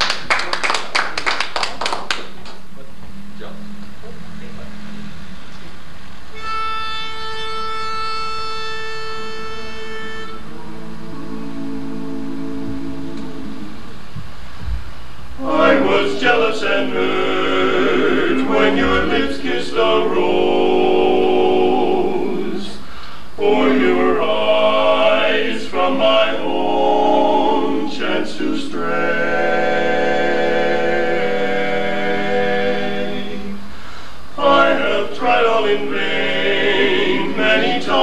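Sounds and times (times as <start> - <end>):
people clapping: 0.0 - 2.8
quartet humming: 2.8 - 38.0
pitch pipe note: 3.0 - 14.6
a cappella vocal harmony: 15.4 - 38.0.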